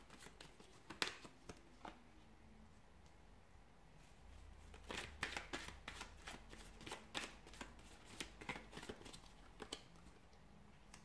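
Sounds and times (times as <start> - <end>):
cards being shuffled: 0.0 - 2.0, 4.8 - 9.9.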